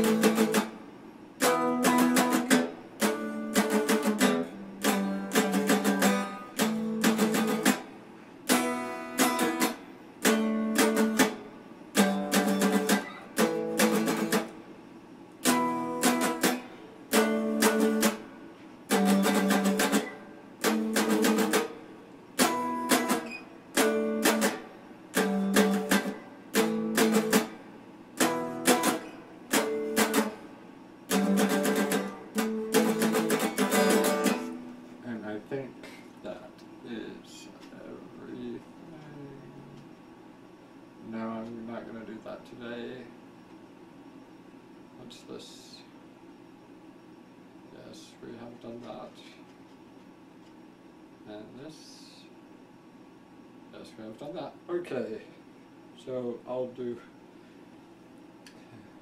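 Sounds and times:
electric guitar strumming chords: 0.0s - 14.6s, 15.4s - 30.5s, 31.1s - 35.3s.

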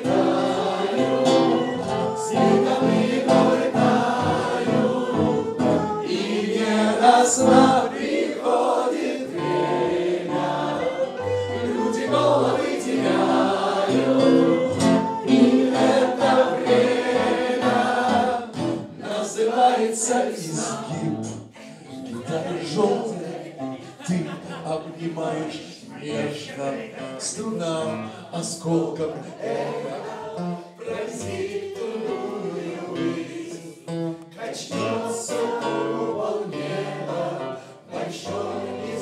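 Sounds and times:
instrumental accompaniment: 0.0s - 19.1s
group singing together: 0.0s - 39.0s.

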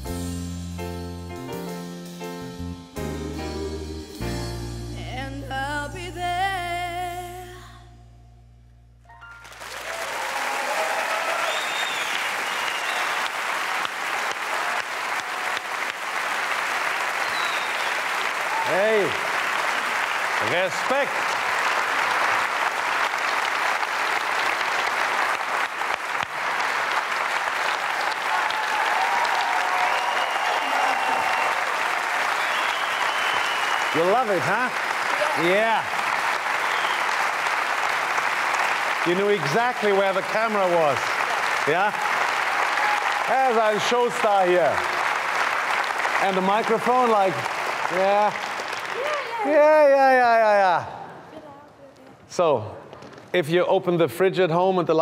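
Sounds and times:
person singing: 3.0s - 8.0s
studio audience applause: 9.2s - 51.3s.

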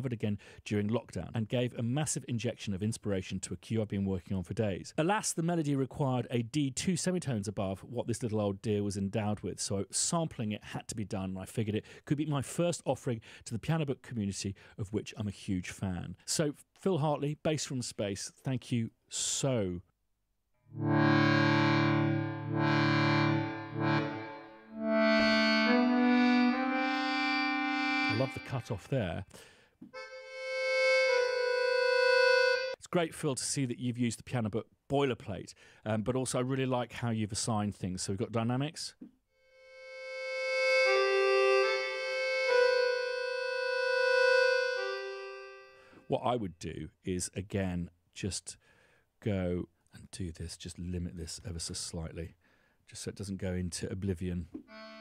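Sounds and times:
accordion chords and notes: 20.7s - 29.0s, 29.8s - 32.8s, 39.5s - 46.1s, 54.6s - 55.0s.

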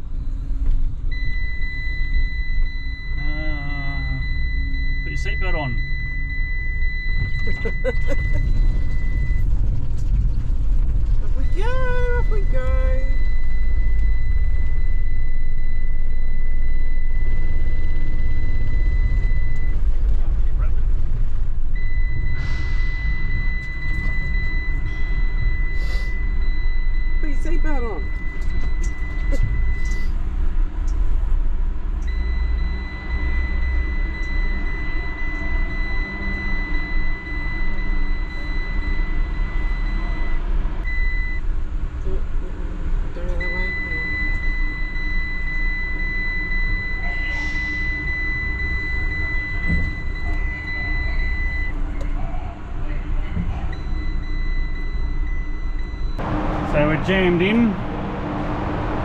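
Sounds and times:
van engine rumble: 0.0s - 59.0s
high-pitched electronic tone: 45.4s - 51.8s.

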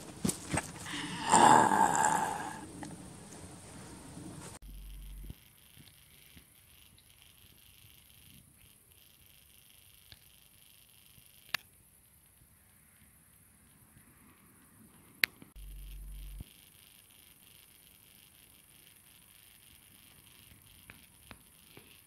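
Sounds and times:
rustling handling noise: 0.0s - 1.0s
faint high-pitched hiss: 2.2s - 22.0s.

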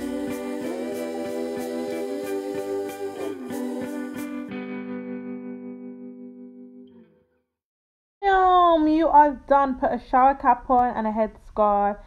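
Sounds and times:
background music chord: 0.0s - 7.0s.

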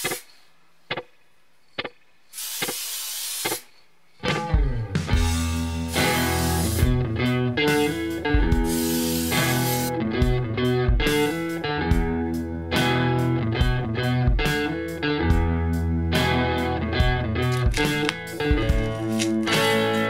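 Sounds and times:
electric guitar music: 4.2s - 20.0s
steady bass line: 4.6s - 20.0s.

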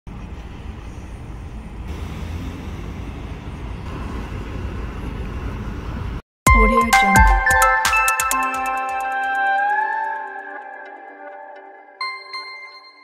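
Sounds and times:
city traffic rumble: 0.1s - 6.2s.

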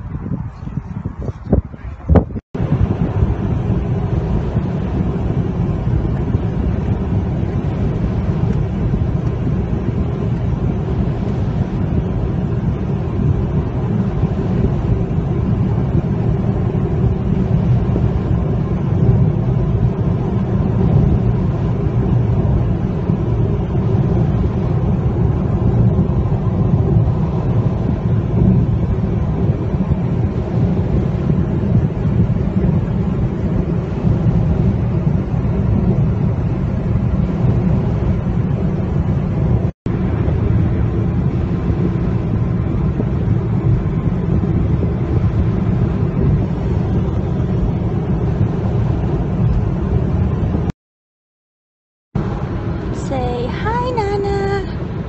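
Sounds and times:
car cabin road rumble: 0.0s - 50.7s, 52.2s - 55.0s.

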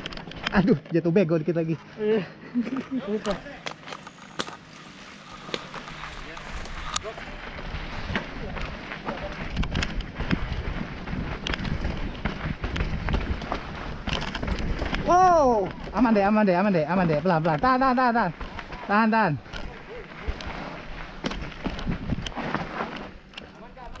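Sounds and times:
running footfalls on dirt trail: 3.8s - 23.3s
wind rumbling on microphone: 6.1s - 23.3s.

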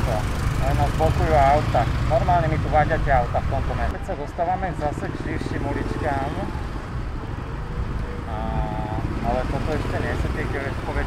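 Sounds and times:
motor scooter engine running: 0.0s - 2.8s.

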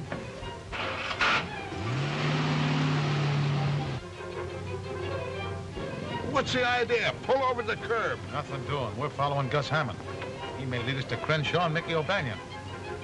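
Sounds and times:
film music: 0.0s - 13.0s
road noise: 0.0s - 13.0s
car engine revving: 0.7s - 4.0s.

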